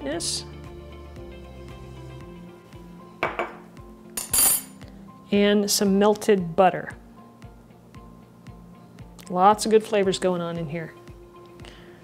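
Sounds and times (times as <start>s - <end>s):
soft background music: 0.0s - 12.0s
metal spoon clinking on glass bowl: 4.2s - 4.8s.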